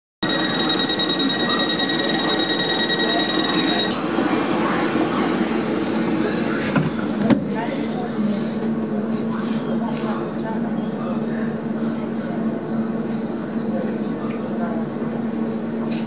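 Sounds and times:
train warning tone: 0.2s - 4.1s.

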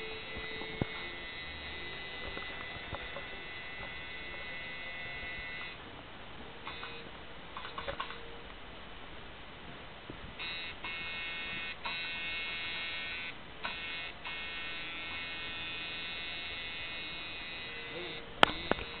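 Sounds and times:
tattoo machine buzzing: 0.0s - 5.8s, 6.7s - 7.0s, 10.4s - 19.0s.

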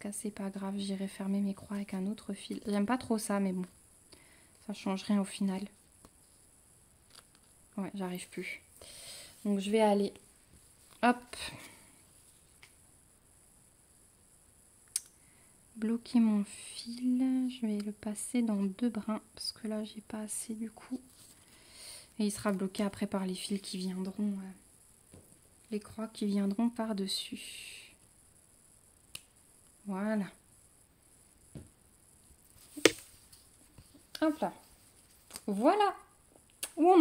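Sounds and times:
steady high hiss: 0.0s - 37.0s.

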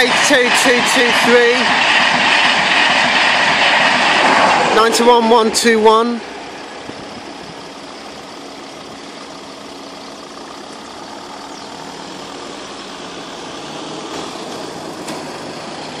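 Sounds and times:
car engines idling: 0.0s - 16.0s.

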